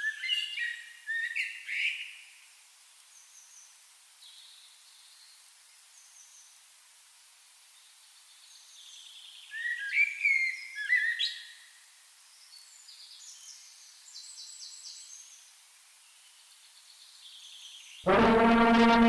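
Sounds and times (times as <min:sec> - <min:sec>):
faint outdoor hiss: 0:00.0 - 0:19.0.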